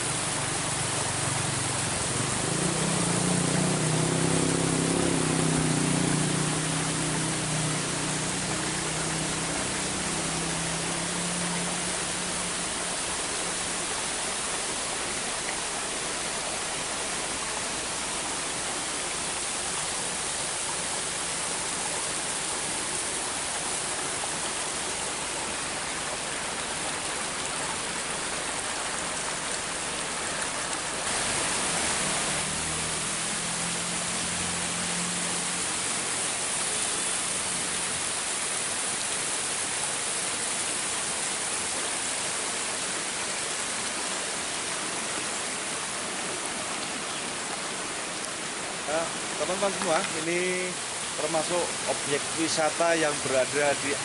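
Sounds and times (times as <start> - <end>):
waterfall rushing: 0.0 - 54.0.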